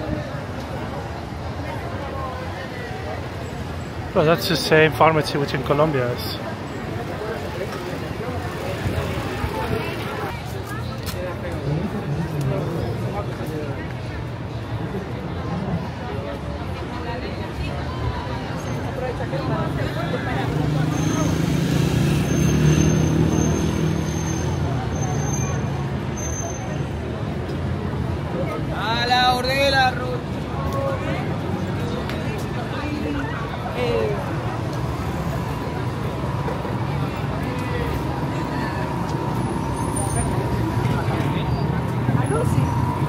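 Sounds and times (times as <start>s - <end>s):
crowd voices: 0.0s - 43.0s
low rumble of traffic: 0.0s - 43.0s
passers-by talking: 0.0s - 43.0s.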